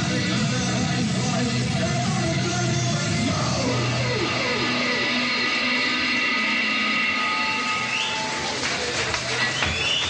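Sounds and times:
electric guitars droning and feeding back: 0:00.0 - 0:09.7.

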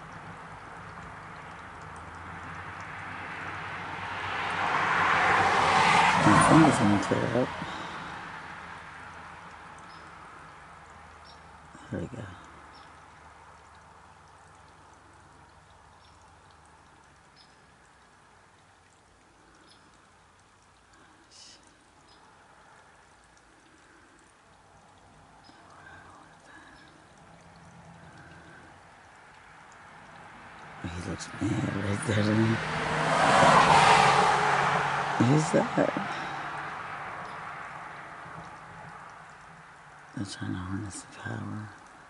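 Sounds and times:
faint steady hiss: 0:05.9 - 0:34.3, 0:35.2 - 0:42.0.

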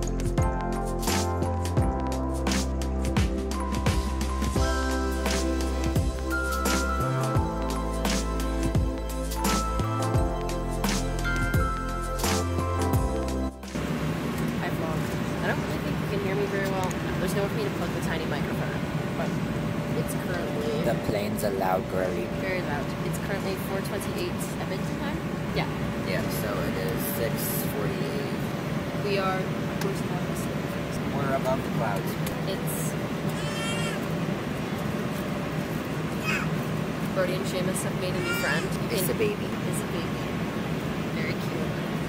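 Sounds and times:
airliner cabin engine drone: 0:03.1 - 0:42.0.

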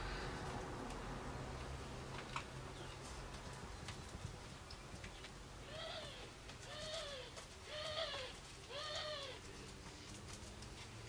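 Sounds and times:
bird calling: 0:05.6 - 0:09.5.

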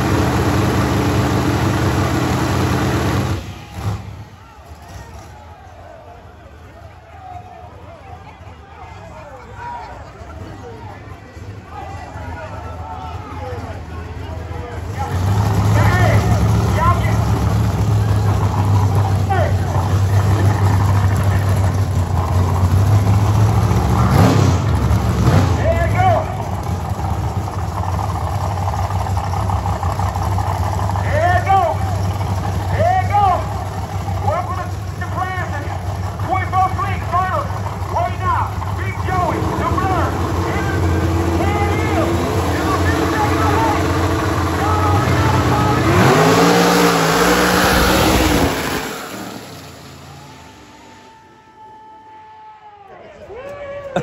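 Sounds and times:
crowd voices and shouts: 0:00.0 - 0:54.0
drag car engines droning: 0:00.0 - 0:54.0.

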